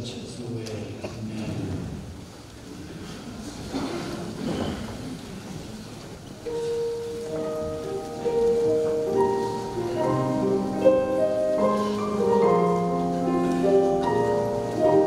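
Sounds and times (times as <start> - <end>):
noisy rustle: 0.0 - 15.0.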